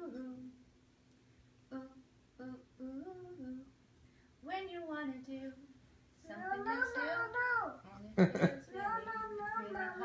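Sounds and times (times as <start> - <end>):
person humming a tune: 0.0 - 0.5, 1.7 - 3.7, 8.2 - 8.6.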